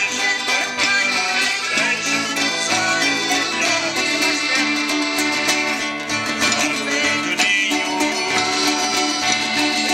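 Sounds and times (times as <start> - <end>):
accordion: 0.0 - 9.9
strummed acoustic guitars: 0.0 - 9.9.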